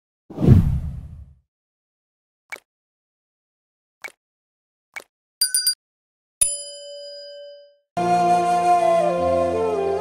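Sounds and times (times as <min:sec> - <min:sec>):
whoosh with deep rumble: 0:00.4 - 0:01.3.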